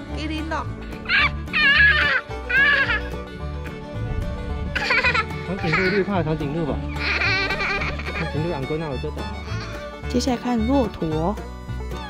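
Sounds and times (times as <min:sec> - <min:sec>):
background music: 0:00.0 - 0:12.0
toddler squealing: 0:01.0 - 0:03.2, 0:06.9 - 0:08.3.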